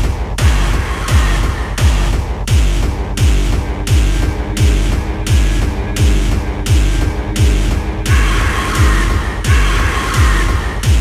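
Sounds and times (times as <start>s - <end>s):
heavy kick drum: 0.0s - 11.0s
noisy high synth: 2.8s - 10.9s.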